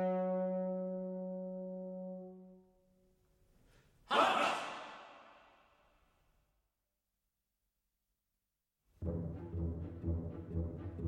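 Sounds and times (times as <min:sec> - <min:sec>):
man's loud breathy cry echoing: 0:04.1 - 0:05.6.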